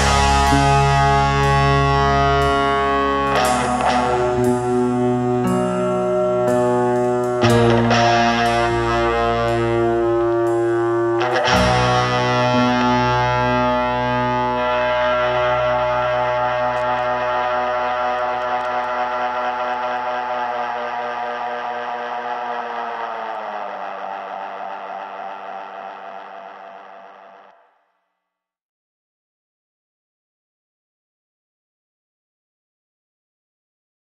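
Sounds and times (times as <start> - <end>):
drums and cymbal hit: 0.0 - 5.8
distorted electric guitar chord: 0.0 - 27.8.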